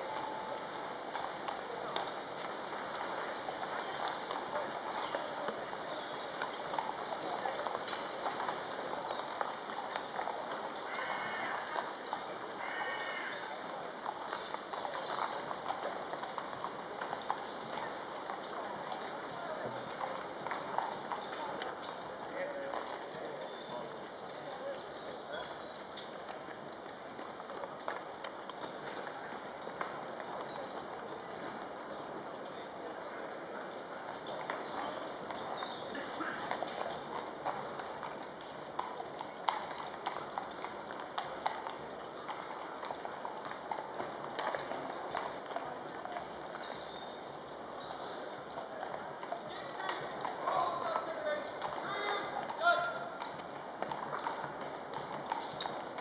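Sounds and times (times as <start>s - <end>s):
horses hooves clip-clopping: 0.0s - 56.0s.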